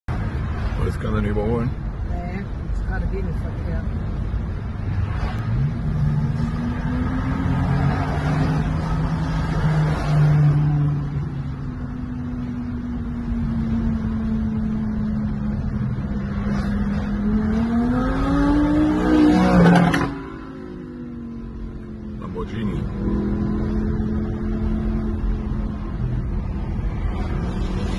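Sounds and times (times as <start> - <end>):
road noise: 0.0 - 27.9
sports car engines passing: 0.1 - 27.9.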